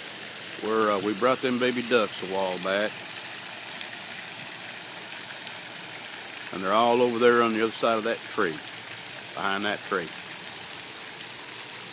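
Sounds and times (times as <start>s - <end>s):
fountain water splashing: 0.0s - 11.9s.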